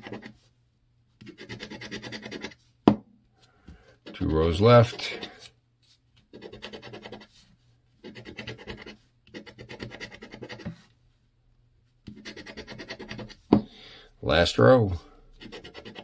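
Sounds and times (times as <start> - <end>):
coin scratching lottery ticket: 0.0 - 0.3, 1.3 - 2.6, 6.3 - 7.3, 8.0 - 10.6, 12.2 - 13.4, 15.4 - 16.0.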